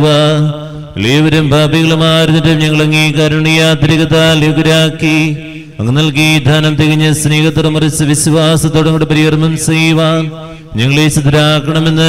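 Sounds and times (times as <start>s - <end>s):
priest chanting a prayer: 0.0s - 12.0s.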